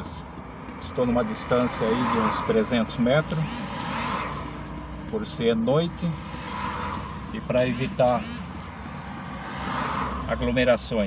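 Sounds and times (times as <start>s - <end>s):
passing car tyres and engine: 0.0s - 11.0s.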